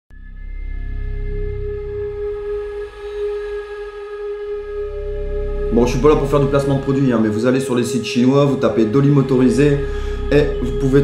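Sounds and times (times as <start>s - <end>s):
low rumble: 0.1s - 11.0s
sustained ringing drone: 0.1s - 11.0s.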